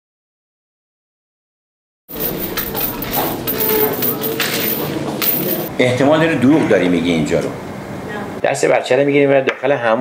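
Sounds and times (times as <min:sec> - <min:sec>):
footsteps on stone floor: 0:02.1 - 0:05.7
metal pieces jingling: 0:02.1 - 0:05.7.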